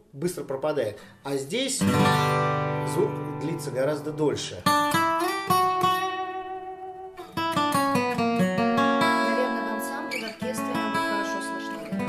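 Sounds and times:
fingerstyle acoustic guitar: 1.8s - 12.0s.

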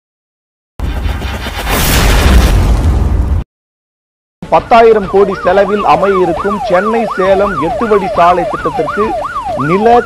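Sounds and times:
loud deep boom: 0.8s - 3.4s.

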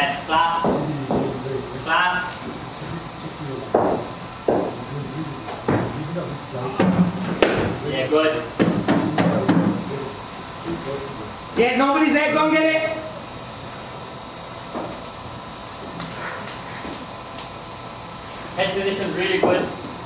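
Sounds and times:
cricket ball knocking on bat: 6.8s - 7.7s.

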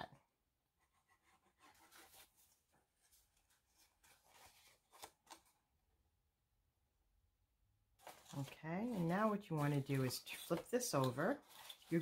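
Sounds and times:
cardstock paper rustling and scraping: 1.1s - 5.6s, 8.0s - 12.0s.

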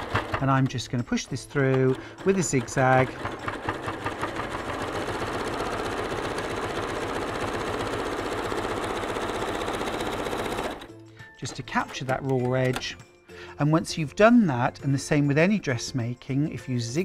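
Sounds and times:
electric sewing machine stitching: 0.0s - 10.9s.

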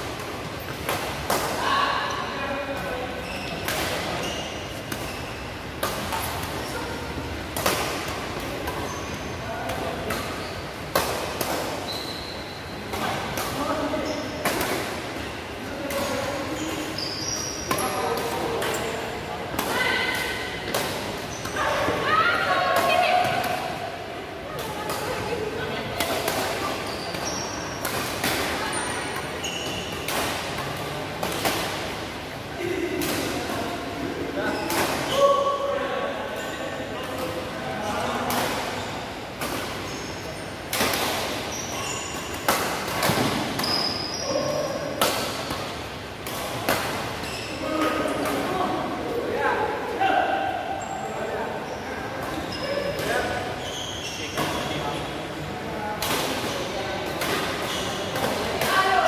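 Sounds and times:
voices in hall: 1.3s - 59.0s
shoes squeaking on court floor: 3.1s - 6.8s, 8.4s - 9.4s, 10.1s - 10.8s, 11.7s - 13.2s, 16.0s - 19.1s, 26.2s - 27.9s, 28.6s - 30.2s, 39.8s - 40.6s, 41.4s - 45.8s, 47.2s - 48.2s, 50.8s - 55.2s, 57.5s - 58.2s.

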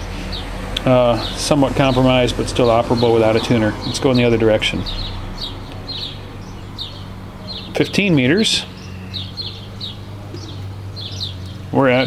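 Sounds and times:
birds chirping: 0.0s - 12.0s
steady low hum: 0.0s - 12.0s.

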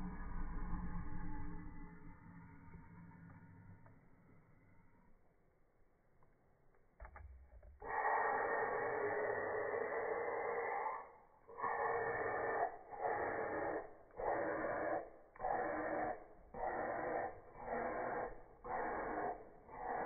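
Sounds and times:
person breathing hissing: 7.8s - 20.0s.

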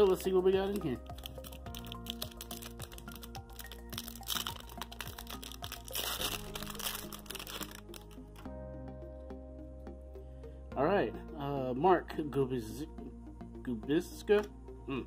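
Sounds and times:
soft background music: 0.0s - 15.0s
card pack wrapper crinkling: 0.1s - 8.5s.

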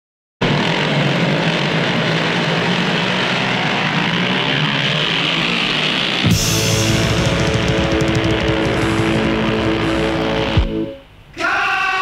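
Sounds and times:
motorcycle engines revving: 0.4s - 11.1s.

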